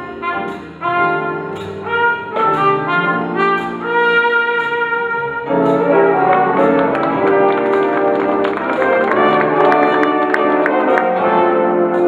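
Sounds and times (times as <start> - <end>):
jazz big band music: 0.0 - 12.0.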